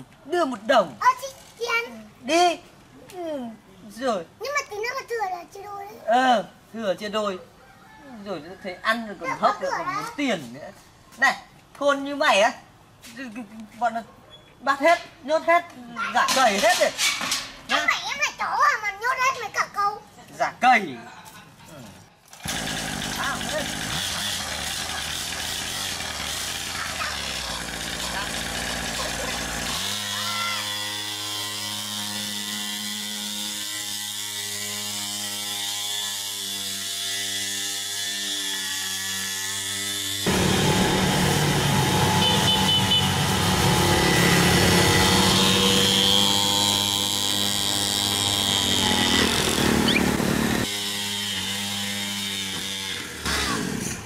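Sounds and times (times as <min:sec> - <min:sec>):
small dirt bike engine running: 0:22.3 - 0:54.0.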